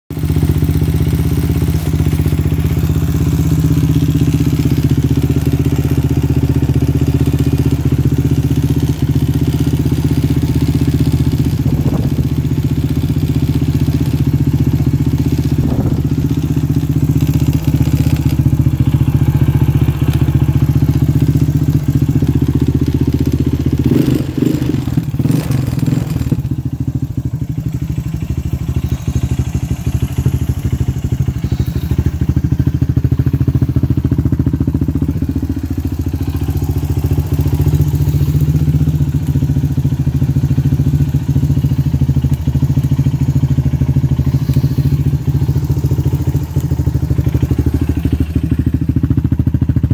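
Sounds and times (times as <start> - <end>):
engine knocks and clatter: 0.1 - 49.9
quad engine idling: 0.1 - 49.9.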